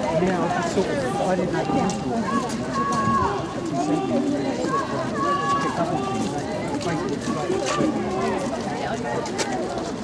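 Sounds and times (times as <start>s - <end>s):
faint footsteps: 0.0s - 10.0s
people talking: 0.0s - 10.0s.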